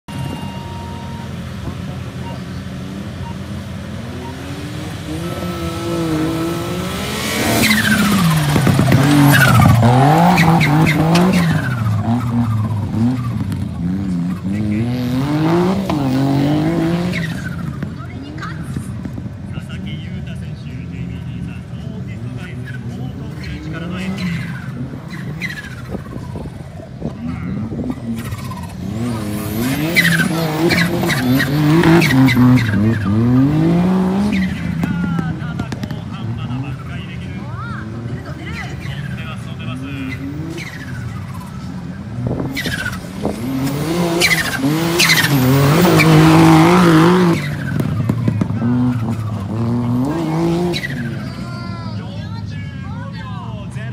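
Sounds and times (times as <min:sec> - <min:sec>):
off-road car engine revving: 0:00.0 - 0:53.9.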